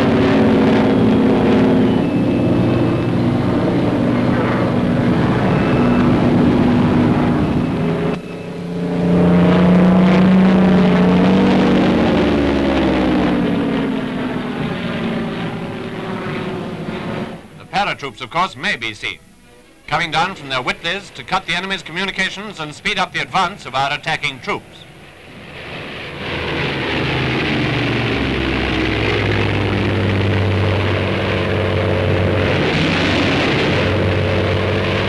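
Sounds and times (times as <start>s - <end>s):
propeller aircraft engines droning: 0.0s - 35.0s.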